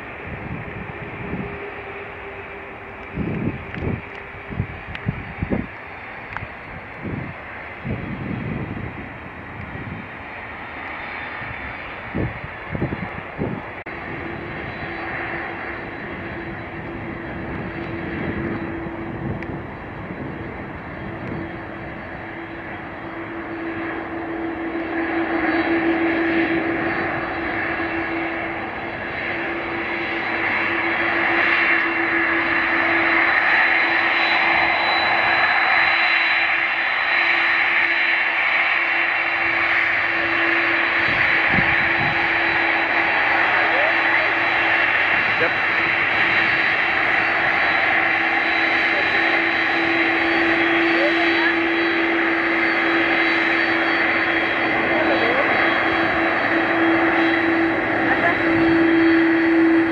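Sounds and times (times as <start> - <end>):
jet engines whining: 0.0 - 59.9.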